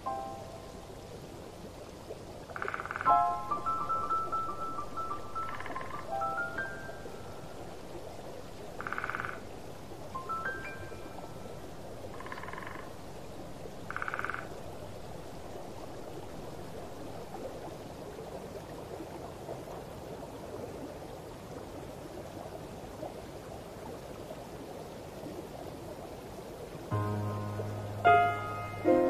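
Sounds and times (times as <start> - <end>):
frogs calling: 2.5 - 17.0.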